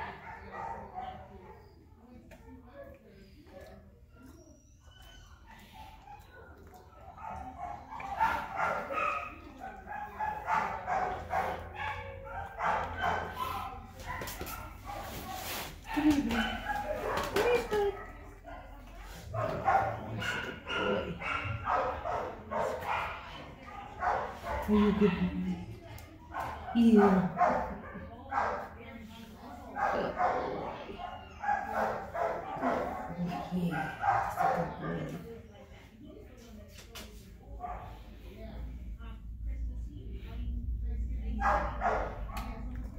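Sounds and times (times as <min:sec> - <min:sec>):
dog barking: 0:00.0 - 0:01.6, 0:05.8 - 0:15.4, 0:16.2 - 0:25.4, 0:26.3 - 0:28.8, 0:29.7 - 0:35.1, 0:41.4 - 0:42.6.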